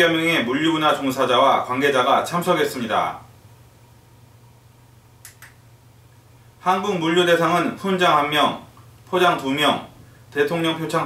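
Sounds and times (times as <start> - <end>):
low steady hum: 0.0 - 11.0
short faint clicks: 5.2 - 5.6.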